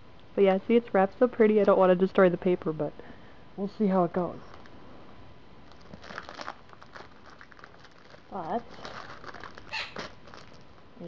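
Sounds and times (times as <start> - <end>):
wrapping paper crinkling: 5.6 - 11.0.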